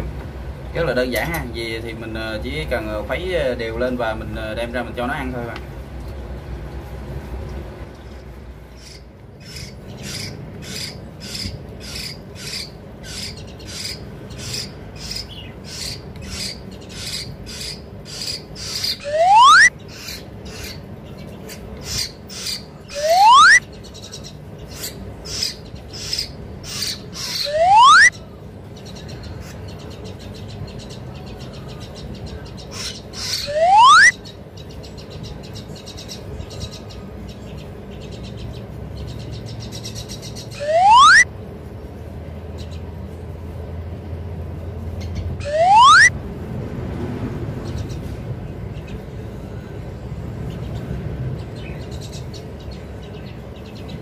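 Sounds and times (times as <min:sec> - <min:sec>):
bird chick rasping calls: 0:08.7 - 0:28.2, 0:28.8 - 0:41.3, 0:45.0 - 0:46.1
bird chick rising whistled call: 0:18.8 - 0:19.7, 0:22.9 - 0:23.6, 0:27.2 - 0:28.1, 0:33.3 - 0:34.2, 0:40.6 - 0:41.3, 0:45.4 - 0:46.1.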